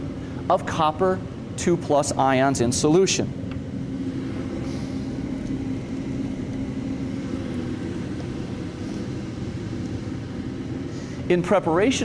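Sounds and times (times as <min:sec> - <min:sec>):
steady low electrical hum: 0:00.0 - 0:12.0.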